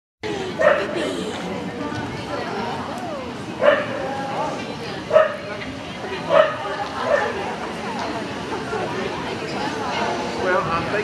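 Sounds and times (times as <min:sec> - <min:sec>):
murmur of voices: 0:00.2 - 0:11.0
dog barking: 0:00.6 - 0:01.0, 0:03.6 - 0:04.0, 0:05.1 - 0:05.4, 0:06.3 - 0:07.4.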